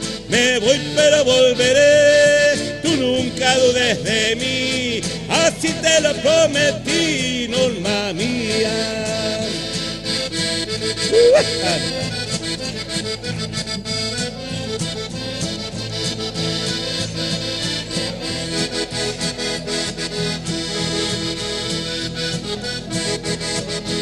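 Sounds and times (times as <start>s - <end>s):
accordion melody: 0.0s - 24.0s
acoustic guitar strumming: 0.0s - 24.0s
loud sliding cry: 11.1s - 11.9s.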